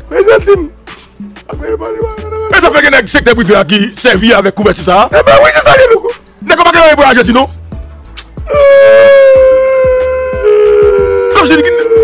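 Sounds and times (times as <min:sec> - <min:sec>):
high wailing cry: 0:01.6 - 0:02.8, 0:08.5 - 0:12.0.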